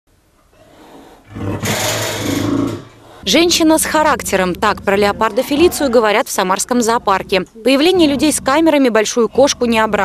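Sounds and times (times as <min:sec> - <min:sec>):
leopard growling: 0:00.4 - 0:10.0.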